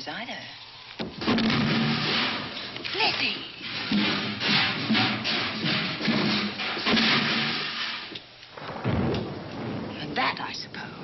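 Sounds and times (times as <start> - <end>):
storm sound effects: 8.6 - 11.0
low thud: 8.7 - 10.0.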